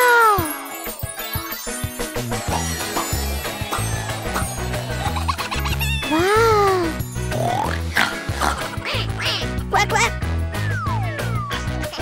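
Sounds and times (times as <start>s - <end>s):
bouncy background music: 0.0s - 12.0s.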